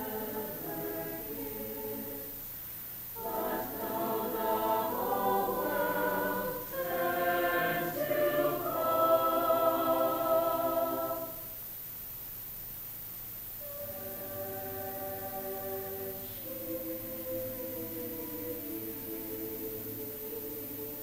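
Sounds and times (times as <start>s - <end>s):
mixed choir singing: 0.0s - 2.6s, 3.2s - 11.6s, 13.6s - 21.0s.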